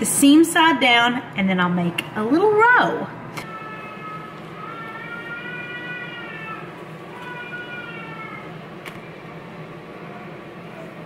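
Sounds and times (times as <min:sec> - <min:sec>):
baby crying: 0:03.4 - 0:08.5.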